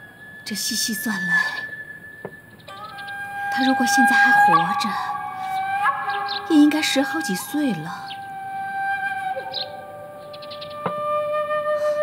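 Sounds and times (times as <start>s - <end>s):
slow flute melody: 0.0s - 12.0s.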